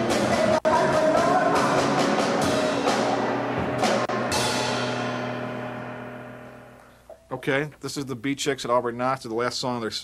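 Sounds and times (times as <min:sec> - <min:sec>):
drum hits: 0:00.7 - 0:06.5
cymbal crashes: 0:02.4 - 0:06.8.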